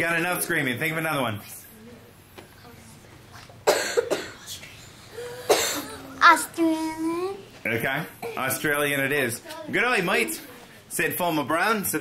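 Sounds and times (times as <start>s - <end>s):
person coughing: 3.7s - 4.4s, 5.2s - 6.0s.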